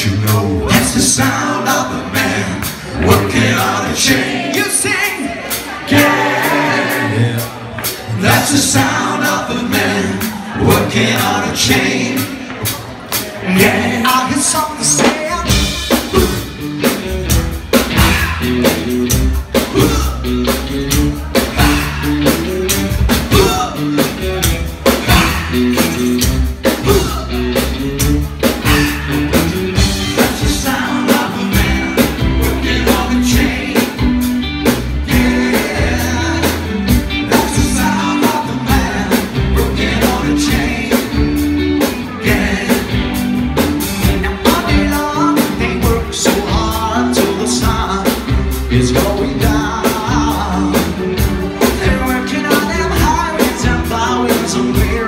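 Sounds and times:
man singing into a microphone: 0:00.0 - 0:06.2, 0:13.4 - 0:16.4, 0:30.2 - 0:34.0, 0:35.1 - 0:41.3, 0:44.2 - 0:51.0, 0:51.6 - 0:55.0
bass guitar: 0:00.0 - 0:55.0
drums: 0:00.0 - 0:55.0
rock band playing: 0:00.0 - 0:55.0
electric guitar: 0:05.3 - 0:55.0.

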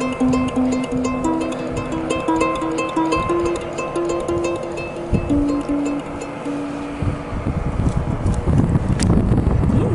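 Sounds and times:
ukulele notes: 0:00.0 - 0:08.5
wind rumble on microphone: 0:00.0 - 0:09.9.

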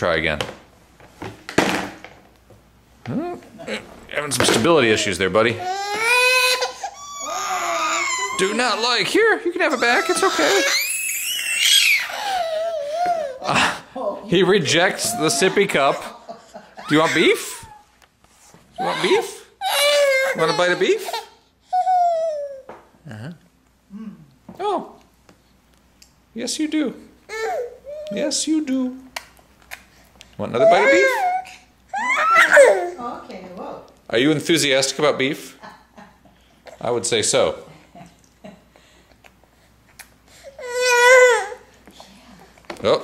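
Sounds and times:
baby crying: 0:05.0 - 0:13.7, 0:16.8 - 0:17.9, 0:18.8 - 0:22.7, 0:27.3 - 0:28.3, 0:30.6 - 0:33.0, 0:40.4 - 0:41.7.

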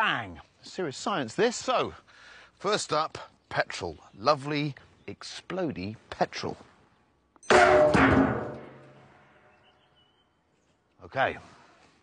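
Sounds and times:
small rocket bang with ringing: 0:07.5 - 0:09.0.

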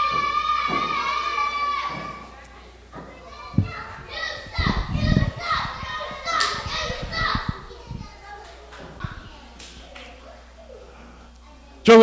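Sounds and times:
children shouting and yelling: 0:00.0 - 0:11.9.

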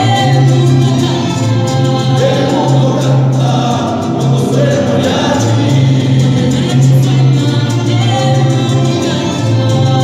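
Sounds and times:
bass line: 0:00.0 - 0:10.0
guitars: 0:00.0 - 0:10.0
violins: 0:00.0 - 0:10.0
voices singing together: 0:00.0 - 0:10.0.

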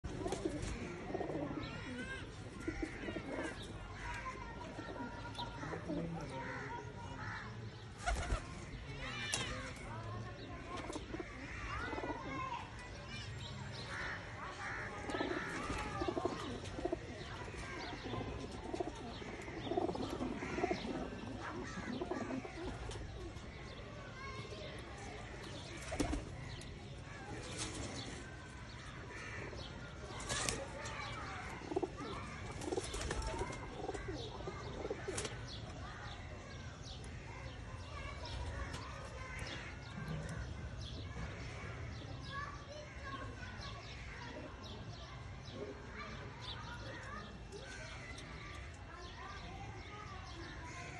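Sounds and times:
distant voices: 0:00.0 - 0:50.9
pigeons cooing: 0:00.1 - 0:03.7, 0:04.5 - 0:06.4, 0:10.8 - 0:12.4, 0:15.0 - 0:23.5, 0:30.2 - 0:35.4.

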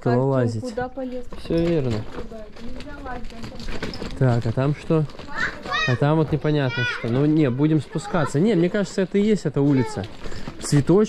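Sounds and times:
main voices talking: 0:00.0 - 0:11.0.

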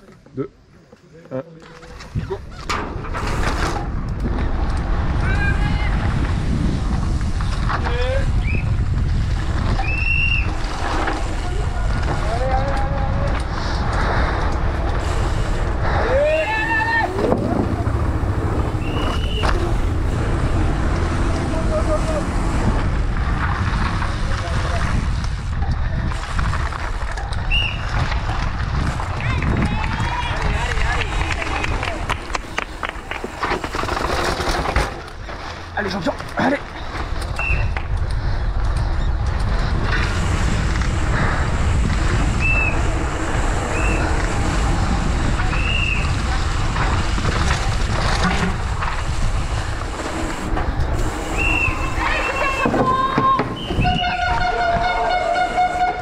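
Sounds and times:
bike chain and frame rattle: 0:01.4 - 0:56.0
bike tyre roar: 0:01.6 - 0:56.0
wind rushing over microphone: 0:02.0 - 0:56.0
spectators shouting: 0:15.8 - 0:19.7, 0:51.4 - 0:56.0.

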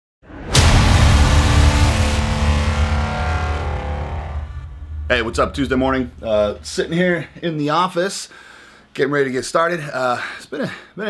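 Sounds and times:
low rumble: 0:00.3 - 0:07.6
steady buzzing tones: 0:00.5 - 0:07.4.

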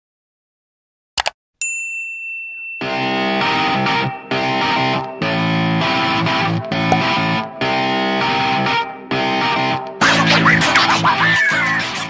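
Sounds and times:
bright high ding: 0:01.6 - 0:05.9.

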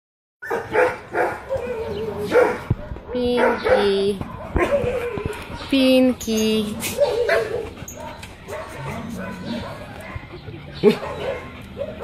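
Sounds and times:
dog barking: 0:00.4 - 0:05.4, 0:06.8 - 0:12.0.

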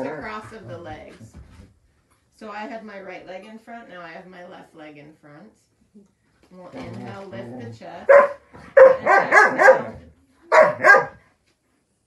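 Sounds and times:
dog barking: 0:08.0 - 0:11.2.

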